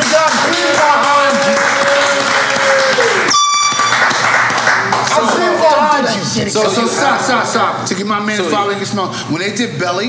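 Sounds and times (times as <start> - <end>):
air horn: 3.3 - 4.1.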